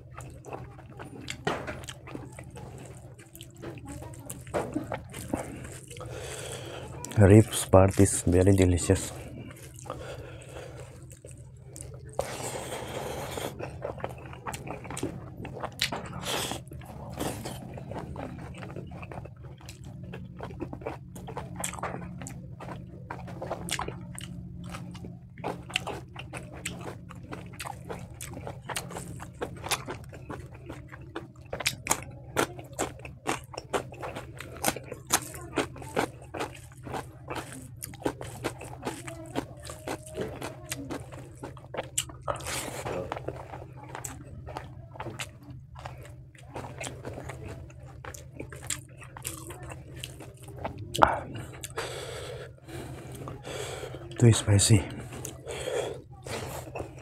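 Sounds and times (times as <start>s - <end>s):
wet chewing and biting: 0.0s - 57.0s.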